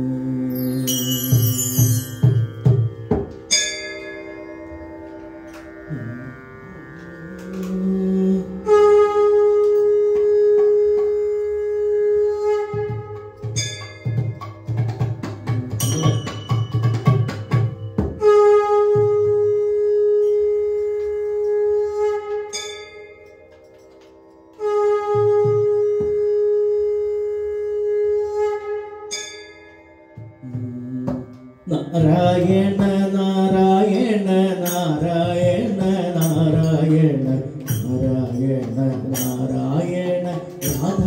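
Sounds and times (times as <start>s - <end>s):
tabla strokes: 0.0s - 41.0s
metallic bell-like ring: 0.5s - 5.0s, 13.5s - 14.7s, 15.8s - 18.0s, 29.1s - 30.3s, 39.1s - 39.6s.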